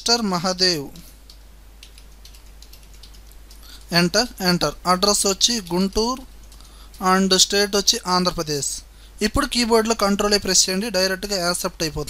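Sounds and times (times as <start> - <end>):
typing on computer keyboard: 1.2 - 3.9, 5.5 - 7.1.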